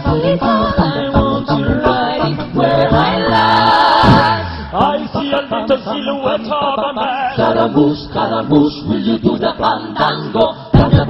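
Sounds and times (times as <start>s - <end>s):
male a cappella group singing: 0.0s - 11.0s.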